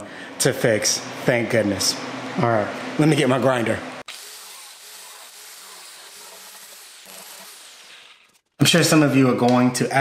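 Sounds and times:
angle grinder grinding plastic: 4.1s - 8.5s.

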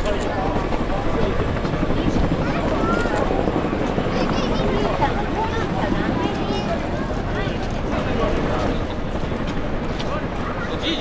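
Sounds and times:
helicopter rotors beating: 0.0s - 11.0s
spectators' voices: 0.0s - 11.0s.

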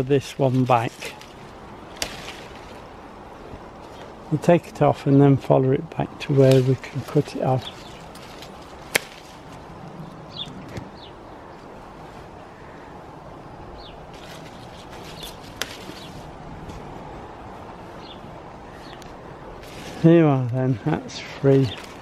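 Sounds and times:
secateurs snipping: 0.5s - 2.8s, 6.2s - 9.5s, 14.1s - 16.1s.

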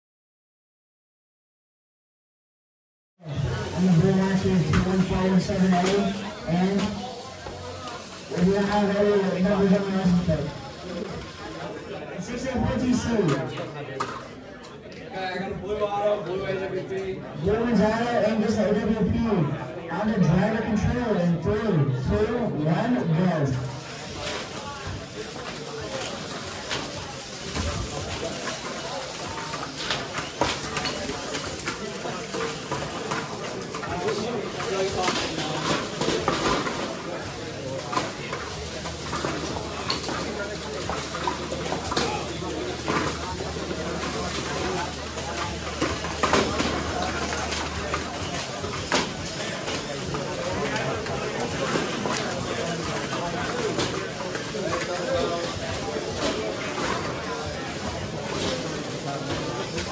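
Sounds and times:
murmur of voices: 3.2s - 59.9s.

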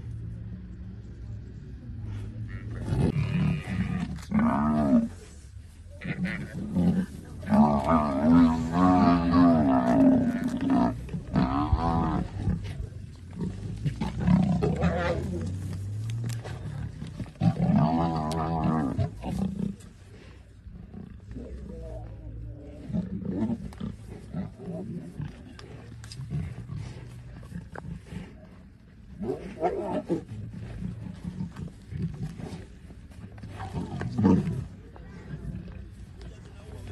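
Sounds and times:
lions growling: 1.9s - 36.2s
buffalo bellowing: 6.0s - 12.7s.

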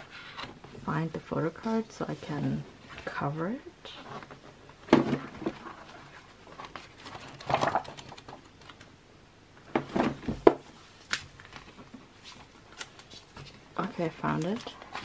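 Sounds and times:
pages flipping: 5.1s - 8.9s, 10.9s - 15.0s.

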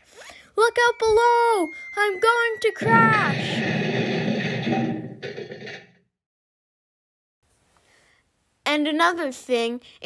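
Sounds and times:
crash clatter: 2.8s - 6.1s.

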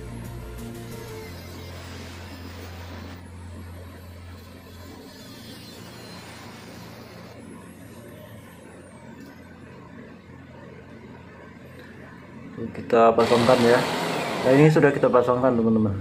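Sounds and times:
angle grinder cutting steel: 1.0s - 3.3s, 3.9s - 7.4s, 13.2s - 15.3s.

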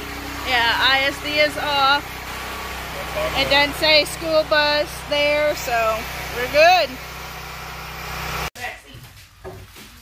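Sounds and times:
engine droning at idle: 0.0s - 8.5s.

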